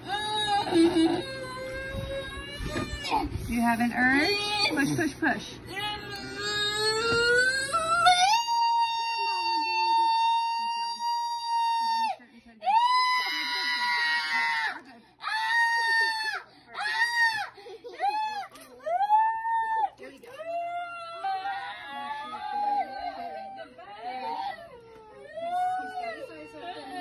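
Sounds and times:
woman screaming: 0:07.7 - 0:19.9.

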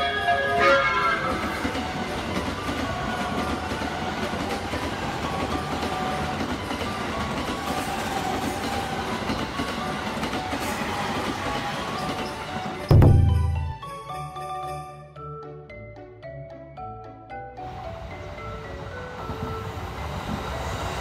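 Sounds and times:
train wheels rumbling on rails: 0:00.0 - 0:14.0.

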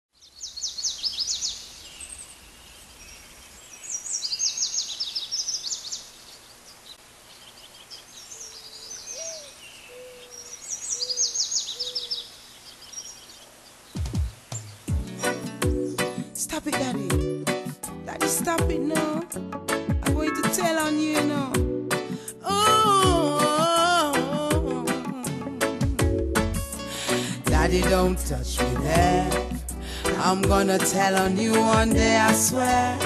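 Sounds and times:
songbird singing: 0:00.1 - 0:17.6
soft low bird calls: 0:00.4 - 0:14.9
reggae beat: 0:14.0 - 0:33.0.

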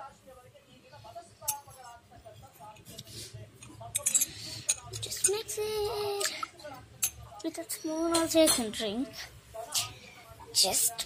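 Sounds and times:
spoon clinking against container: 0:03.6 - 0:05.4.

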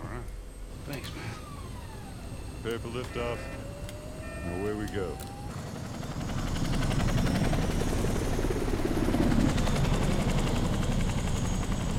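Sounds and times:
aircraft engines droning: 0:00.0 - 0:11.9
aircraft rotors beating: 0:00.6 - 0:11.9.

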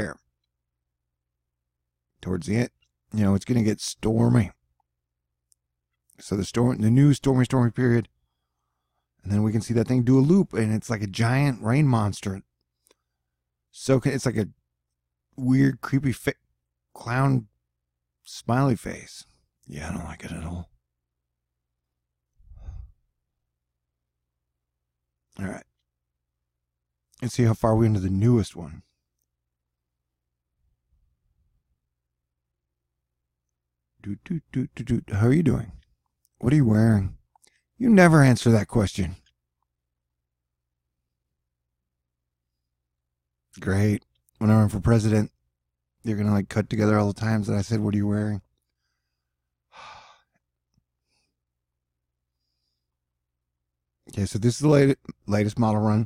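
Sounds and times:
man sighing: 0:22.5 - 0:23.0, 0:49.7 - 0:50.2.

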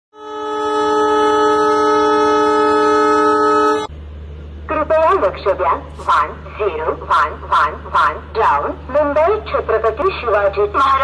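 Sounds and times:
train horn blast: 0:00.1 - 0:03.9.

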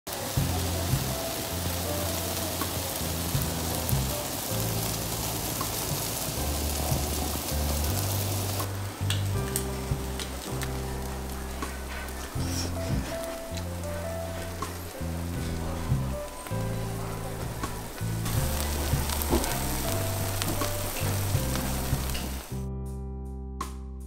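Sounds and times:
food sizzling on griddle: 0:00.1 - 0:22.6
background music: 0:00.1 - 0:24.0.

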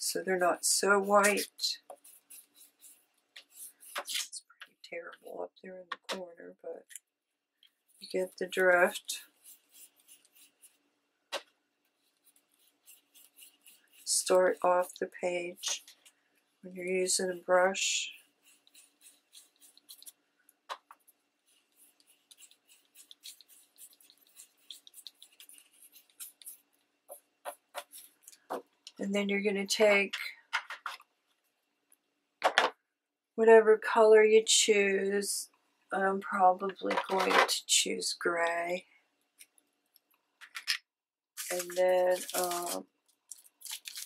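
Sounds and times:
brush scrubbing on paper: 0:00.3 - 0:04.4, 0:07.8 - 0:10.9, 0:11.9 - 0:16.0, 0:16.9 - 0:20.2, 0:20.8 - 0:28.5, 0:41.4 - 0:42.8.

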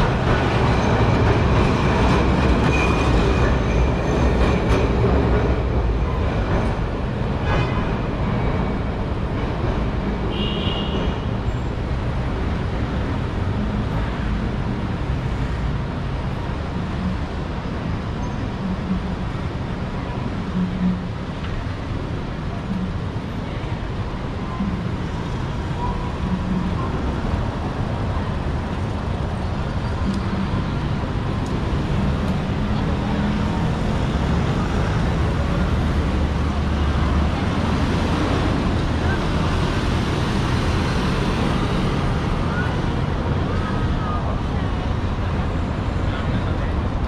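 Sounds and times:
traffic noise: 0:00.0 - 0:47.0
passers-by talking: 0:21.6 - 0:47.0.

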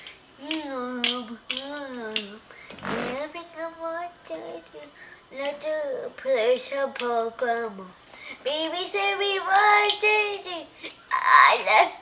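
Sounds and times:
young child singing: 0:00.4 - 0:12.0.

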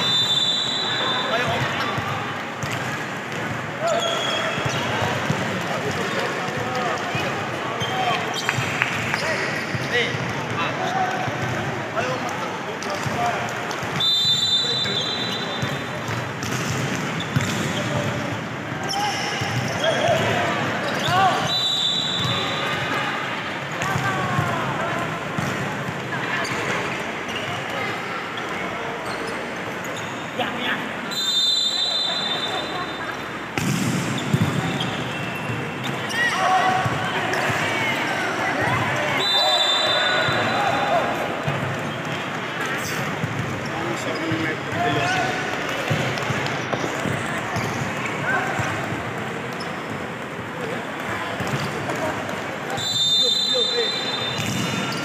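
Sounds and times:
ball bouncing on wooden court: 0:15.6 - 0:18.3, 0:33.5 - 0:36.1, 0:54.4 - 0:55.0
volleyball being struck: 0:33.5 - 0:34.8
players shouting: 0:34.5 - 0:41.5.

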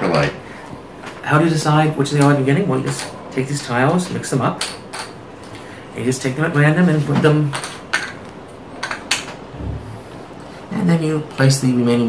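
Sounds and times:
soft low thump: 0:09.5 - 0:10.1.

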